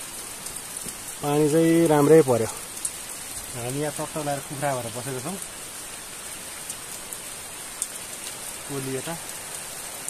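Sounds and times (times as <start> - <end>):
steady rain falling: 0.0 - 10.0
water drips: 0.0 - 10.0.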